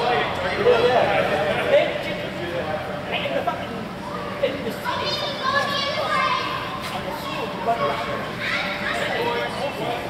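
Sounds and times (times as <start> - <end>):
general chatter: 0.0 - 10.0
children calling and shouting: 3.8 - 10.0.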